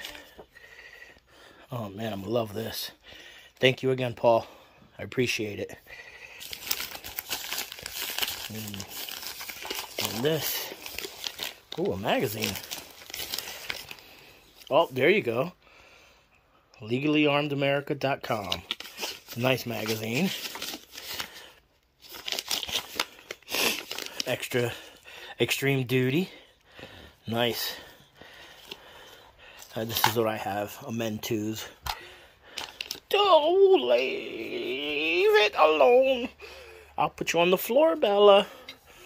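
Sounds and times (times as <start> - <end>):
plastic mailer crinkling: 6.3 - 15.2, 17.9 - 26.4, 27.3 - 36.2.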